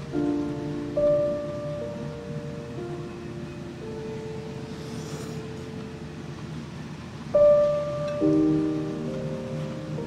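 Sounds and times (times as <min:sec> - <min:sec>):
slow music of held notes: 0:00.0 - 0:10.0.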